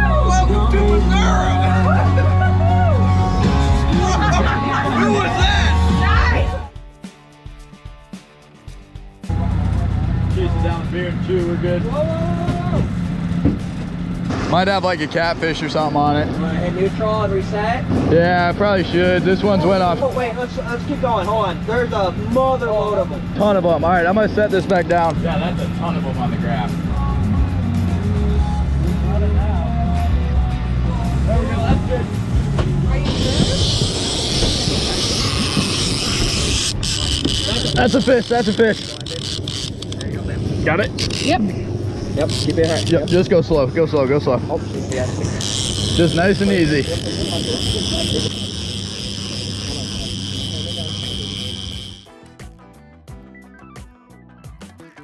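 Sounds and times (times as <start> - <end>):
outboard motor humming: 0.0 - 6.7, 9.2 - 52.5
music: 0.0 - 55.0
fishing reel drag buzzing: 33.0 - 43.4, 44.9 - 52.2.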